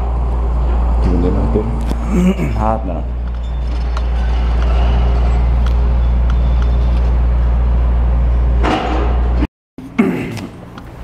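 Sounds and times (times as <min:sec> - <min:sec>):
heavy machine engine rumbling: 0:00.0 - 0:09.5.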